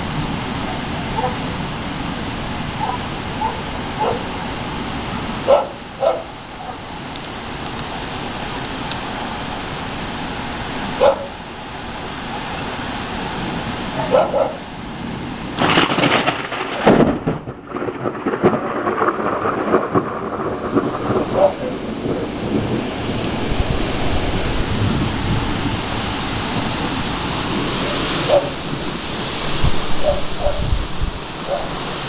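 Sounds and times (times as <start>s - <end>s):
rain hiss: 0.0s - 32.0s
thunder crashing and rumbling: 15.0s - 31.9s.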